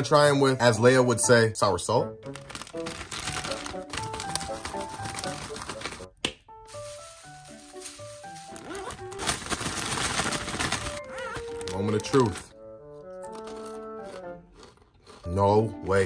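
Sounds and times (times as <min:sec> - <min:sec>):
background music: 0:00.0 - 0:16.0
plastic bag crinkling: 0:02.2 - 0:12.5
chips rattling: 0:02.3 - 0:06.1, 0:06.7 - 0:12.5.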